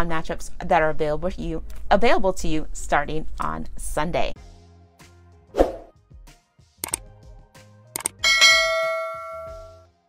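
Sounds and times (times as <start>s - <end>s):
click: 8.0s - 8.2s
ringing bell strike: 8.2s - 9.8s.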